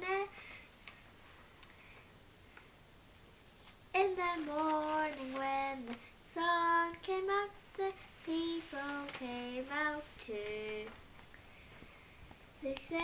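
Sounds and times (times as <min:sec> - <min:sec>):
girl singing unaccompanied: 0:00.0 - 0:01.2, 0:03.9 - 0:11.1, 0:12.6 - 0:13.0.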